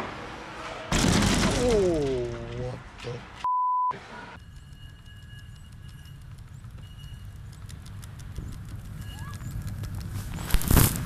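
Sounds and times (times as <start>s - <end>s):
loud crash: 0.0s - 2.3s
censor bleep: 3.4s - 6.2s.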